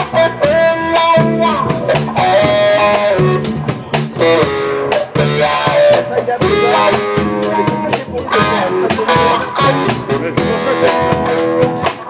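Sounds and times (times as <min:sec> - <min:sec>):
drum kit steady beat: 0:00.0 - 0:12.0
electric guitar lead lines: 0:00.0 - 0:12.0
upright bass: 0:00.0 - 0:12.0.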